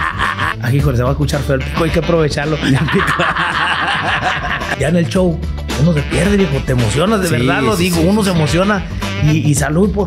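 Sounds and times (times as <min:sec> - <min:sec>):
man laughing: 0:00.0 - 0:00.8, 0:02.4 - 0:05.0.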